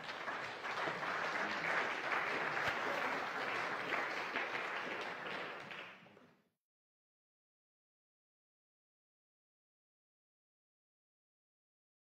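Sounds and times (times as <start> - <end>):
audience applause: 0.0 - 6.3.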